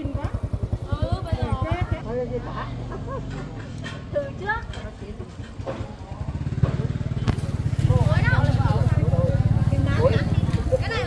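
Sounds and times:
small engine running: 0.0s - 3.7s, 5.9s - 11.0s
women chattering: 0.0s - 11.0s.

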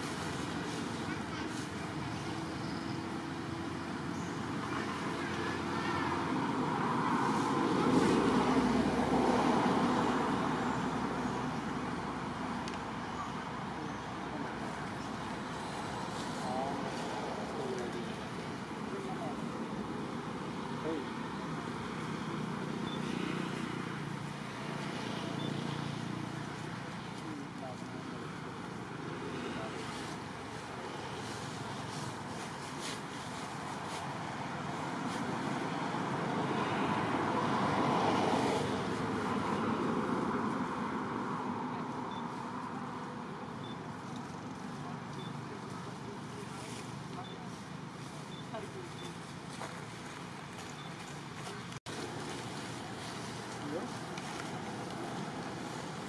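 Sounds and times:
distant traffic noise: 0.0s - 56.0s.

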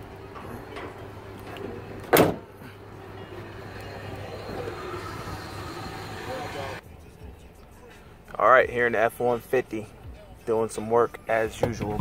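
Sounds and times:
low even hum: 0.0s - 6.8s
faint voices: 0.2s - 8.0s.

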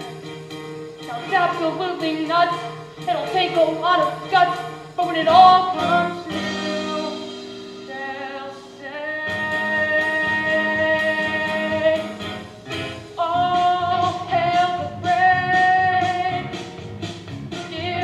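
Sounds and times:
instrumental accompaniment: 0.0s - 18.0s
boy singing: 1.1s - 7.3s, 7.9s - 12.2s, 13.2s - 16.6s, 17.6s - 18.0s.

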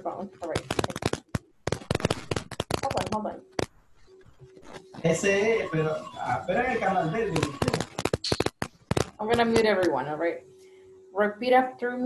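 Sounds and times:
microphone pops and crackles: 0.4s - 5.1s, 7.4s - 10.0s.

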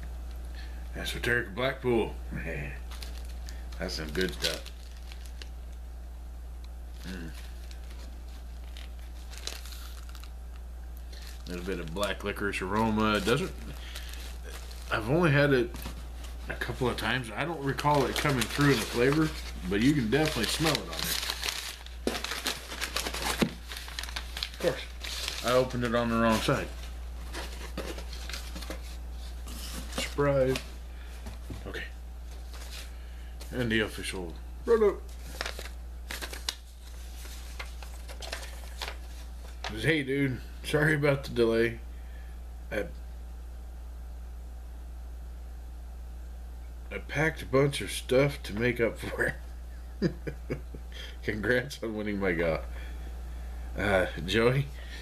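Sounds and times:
steady low hum: 0.0s - 55.0s
tobacco package crinkling: 2.8s - 5.8s, 7.0s - 30.7s, 35.1s - 39.8s.

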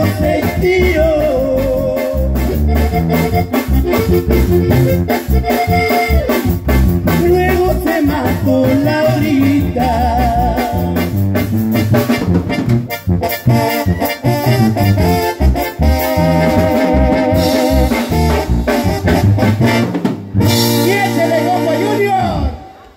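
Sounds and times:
drums with dance beat: 0.0s - 13.1s
bass: 0.0s - 22.6s
electronic keyboard: 0.0s - 22.9s.

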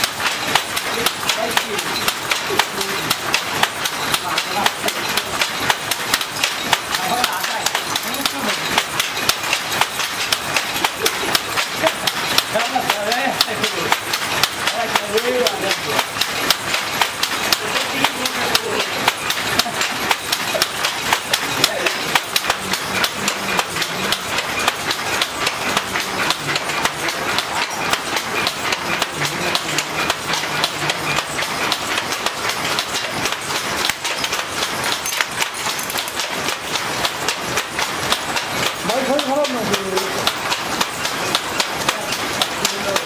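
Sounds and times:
wooden looms clattering: 0.0s - 43.0s.

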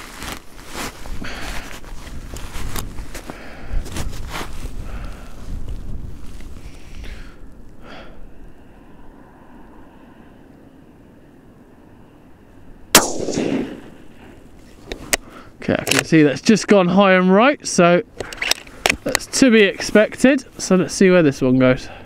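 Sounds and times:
rustling: 0.0s - 7.0s
suppressed rifle shot: 12.9s - 14.1s.

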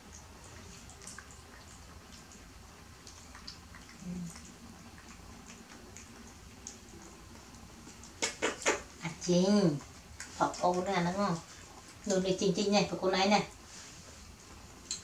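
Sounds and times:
faint clicks and ticks: 0.0s - 12.5s
monkeys chewing food: 0.0s - 12.7s.

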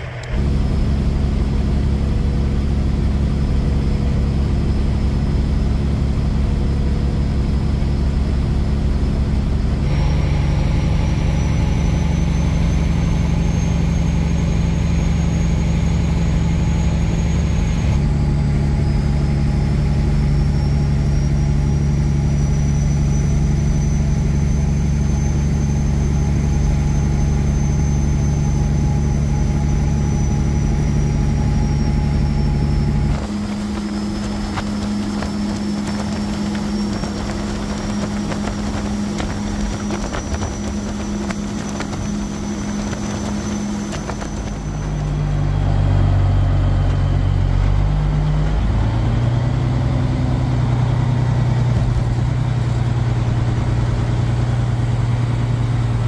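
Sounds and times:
road noise: 0.0s - 56.0s
truck engine drone: 0.0s - 56.0s.

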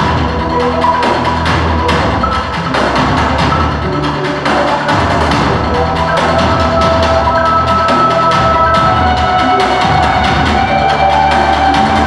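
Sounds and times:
held melodic notes: 0.0s - 12.0s
steady drum beat: 0.0s - 12.0s.

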